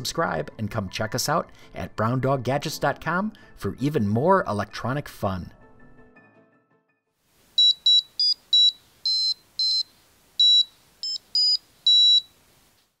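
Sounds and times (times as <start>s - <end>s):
high-pitched electronic beeps: 7.6s - 12.3s.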